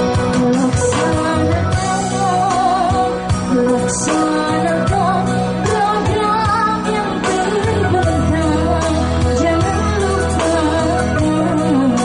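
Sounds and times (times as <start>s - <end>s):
instrumental accompaniment: 0.0s - 12.0s
woman singing into microphone: 0.0s - 12.0s.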